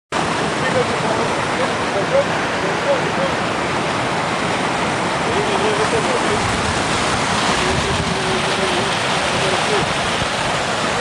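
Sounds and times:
wind on microphone: 3.8s - 11.0s
faint voices: 7.4s - 11.0s.

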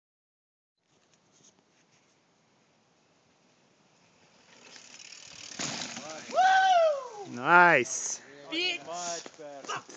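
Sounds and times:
bike freehub ratchet clicking: 4.4s - 5.6s
bike landing thud: 4.6s - 6.5s.

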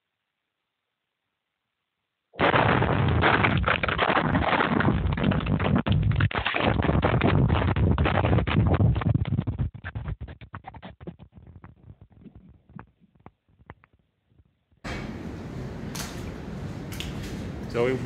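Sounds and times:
scattered blast cracks: 2.4s - 5.7s.

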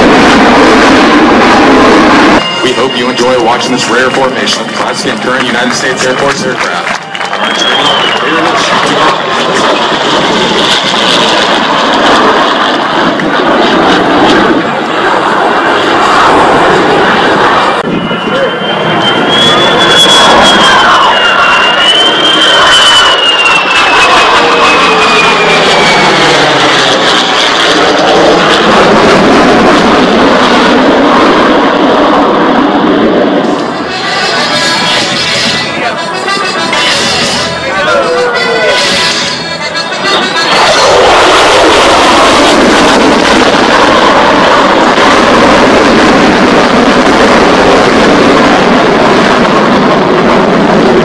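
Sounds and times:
high jet whine: 0.0s - 51.0s
jet engine roaring overhead: 0.0s - 51.0s.

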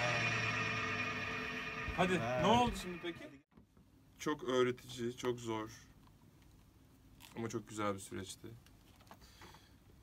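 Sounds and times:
electronic keyboard drone: 0.0s - 3.4s.

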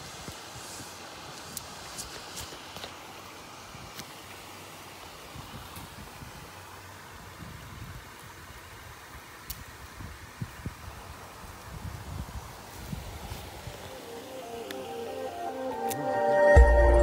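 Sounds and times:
light rustling of branches: 0.0s - 15.1s
faint outdoor background hiss: 0.0s - 17.0s.

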